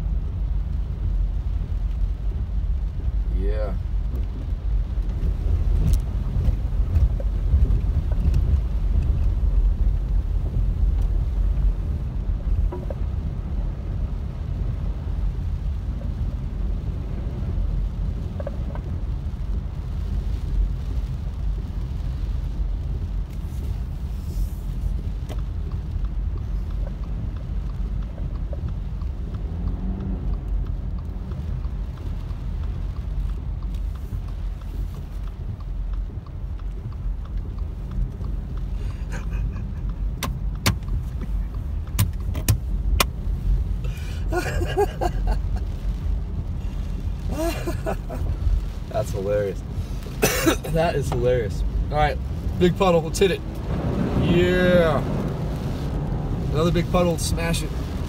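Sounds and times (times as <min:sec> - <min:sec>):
car driving on flooded road: 0:00.0 - 0:58.0
tyres running through water: 0:00.1 - 0:58.0
faint ticks: 0:21.8 - 0:43.9.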